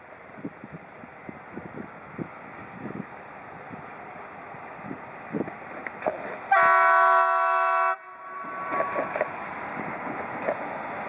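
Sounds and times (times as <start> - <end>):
locomotive horn blast: 6.5 - 9.3.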